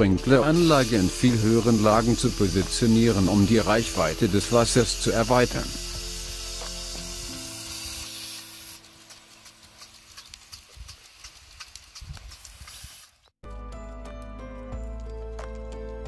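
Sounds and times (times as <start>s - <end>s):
background music: 0.0s - 9.4s, 13.4s - 16.0s
sprinkler spraying water: 0.1s - 13.3s
sharp sprinkler clicks: 0.4s - 13.3s.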